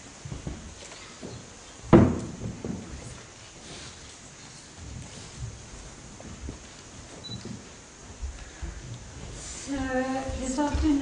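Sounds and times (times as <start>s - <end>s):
soft low thumps: 4.8s - 11.0s.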